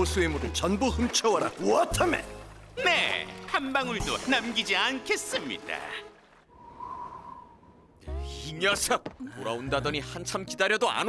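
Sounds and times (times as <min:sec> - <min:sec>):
faint whistling tone: 0:06.5 - 0:08.0.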